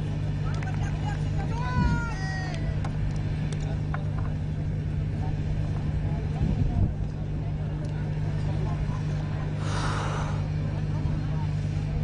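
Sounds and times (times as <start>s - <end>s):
faint distant voices: 0.0s - 12.0s
steady low hum: 0.0s - 12.0s.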